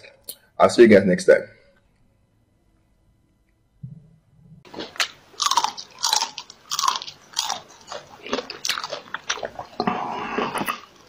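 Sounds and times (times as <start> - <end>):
chewing and biting food: 4.7 - 11.0.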